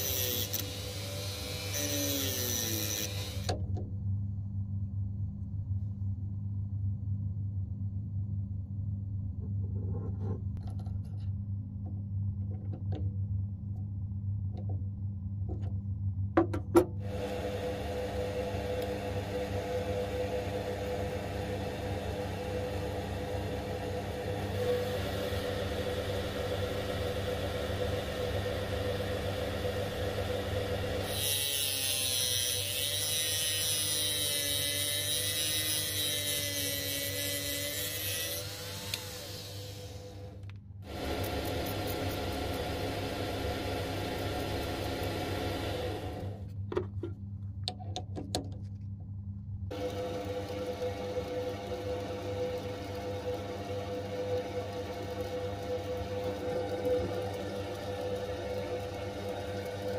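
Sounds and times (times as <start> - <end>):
small lathe motor running: 0.0 - 3.5, 17.1 - 46.4, 49.7 - 59.9.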